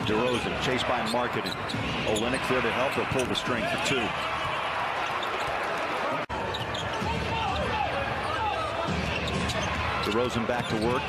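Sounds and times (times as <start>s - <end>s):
arena crowd din: 0.0s - 11.0s
basketball game sounds: 0.0s - 11.0s.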